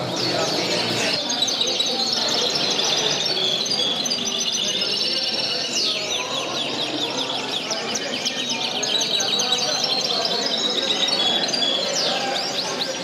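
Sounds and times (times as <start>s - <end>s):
canaries trilling and chirping: 0.0s - 13.0s.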